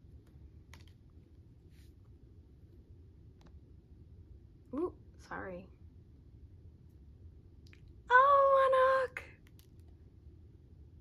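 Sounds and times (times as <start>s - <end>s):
soft paper rustle: 0.7s - 2.8s.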